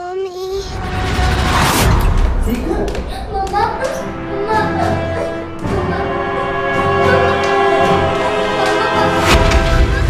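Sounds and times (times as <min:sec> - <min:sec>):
sustained choir-like notes: 0:03.6 - 0:10.0.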